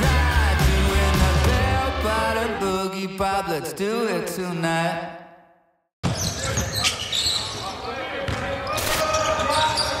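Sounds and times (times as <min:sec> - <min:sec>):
voices in a large arena: 0:00.0 - 0:10.0.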